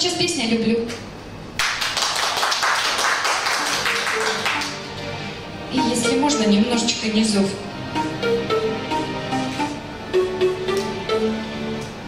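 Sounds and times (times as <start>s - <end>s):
audience applauding: 1.6s - 4.9s.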